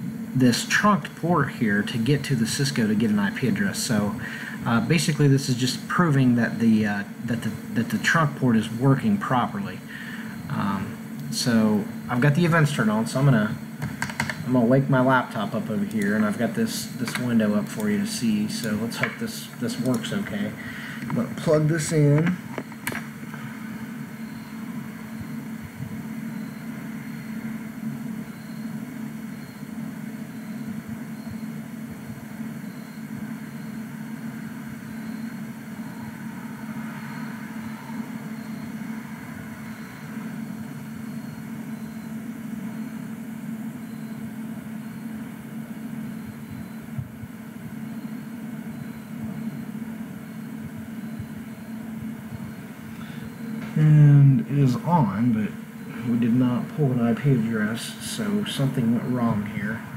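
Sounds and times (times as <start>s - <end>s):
cooling fans humming: 0.0s - 59.9s.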